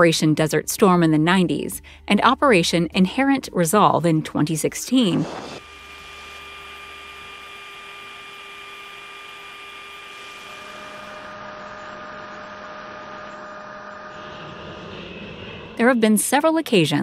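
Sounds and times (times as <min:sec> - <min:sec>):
jet aircraft in flight: 0:13.2 - 0:15.8.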